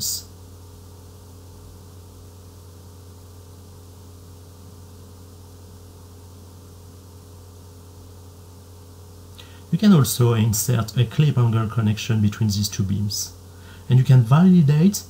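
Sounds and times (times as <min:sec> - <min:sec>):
low electrical hum with hiss: 0:00.0 - 0:15.0.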